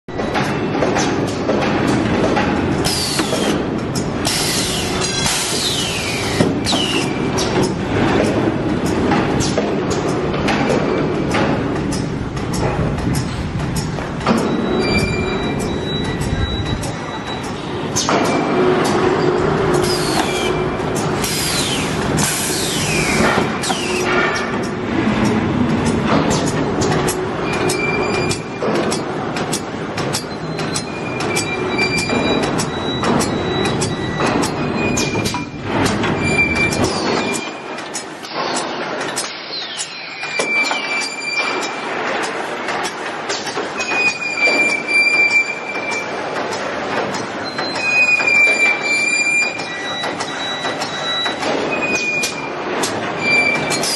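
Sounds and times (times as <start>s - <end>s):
machine clacking: 0.1s - 53.9s
machine squeaks: 2.8s - 8.3s, 8.9s - 29.1s, 30.0s - 53.9s.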